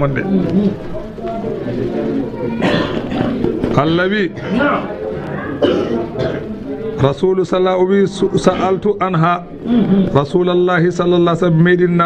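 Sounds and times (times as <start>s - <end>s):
low speech: 0.0s - 12.0s.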